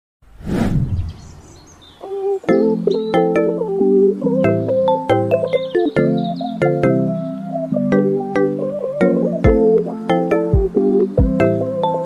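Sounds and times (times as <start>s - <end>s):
noise swell sound effect: 0.3s - 1.9s
faint high chirp-like tones: 1.1s - 12.0s.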